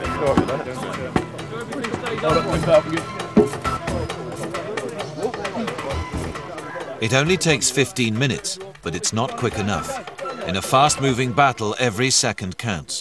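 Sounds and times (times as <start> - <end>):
men calling out: 0.0 - 11.8
background music: 0.0 - 13.0.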